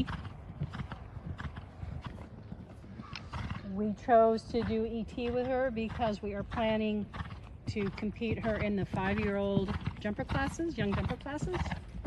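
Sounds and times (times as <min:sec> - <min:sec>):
horse hoofbeats on sand: 0:00.0 - 0:12.0.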